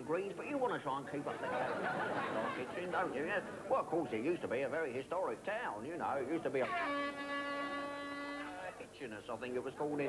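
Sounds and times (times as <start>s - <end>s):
air horn blast: 6.6s - 8.7s.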